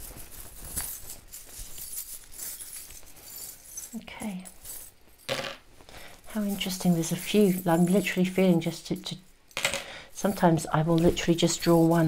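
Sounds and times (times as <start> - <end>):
cloth pouch rustling: 0.0 - 4.0
metal charms clinking: 0.0 - 5.4.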